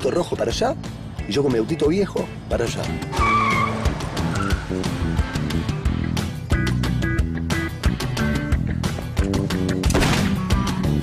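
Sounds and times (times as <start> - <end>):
background music with percussion: 2.3 - 11.0
tyre squeal: 3.1 - 4.8
car pulling away: 3.1 - 6.1.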